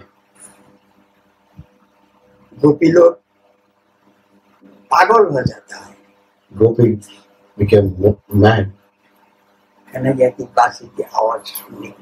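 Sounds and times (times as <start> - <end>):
faint steady hum: 0.0 - 12.0
man speaking: 2.6 - 3.2, 4.9 - 8.8, 9.9 - 12.0.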